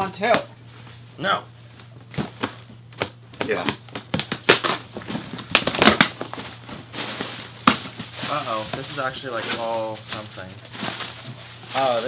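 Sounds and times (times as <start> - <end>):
packing material crinkling: 4.2 - 12.0.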